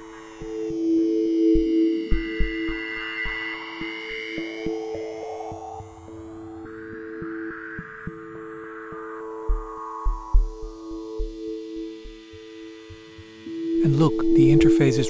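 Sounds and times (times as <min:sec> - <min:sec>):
electronic music: 0:00.0 - 0:15.0
low kick thumps: 0:09.5 - 0:11.4
held electronic tones: 0:13.4 - 0:15.0
high gliding tones: 0:13.4 - 0:15.0.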